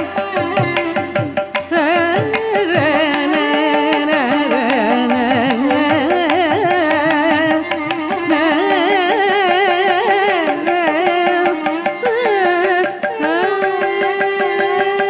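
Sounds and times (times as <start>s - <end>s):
drum strokes: 0.0s - 15.0s
woman singing ornamented melody: 1.6s - 15.0s.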